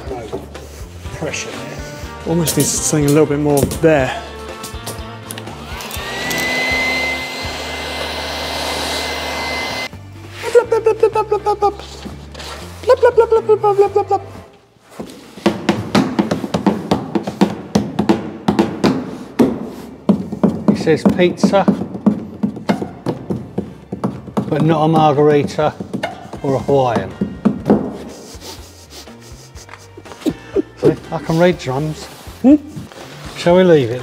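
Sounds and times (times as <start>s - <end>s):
heat gun blowing air: 5.6s - 9.9s
sharp knocks: 15.4s - 26.4s.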